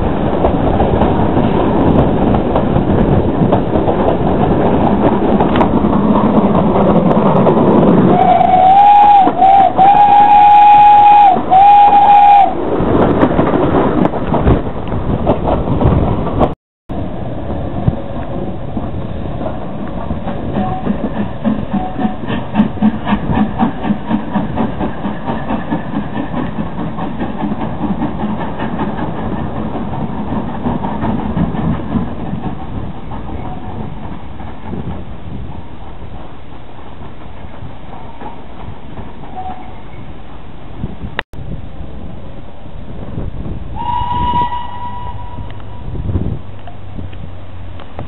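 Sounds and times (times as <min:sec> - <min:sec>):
steam locomotive exhaust beats: 0:00.0 - 0:48.0.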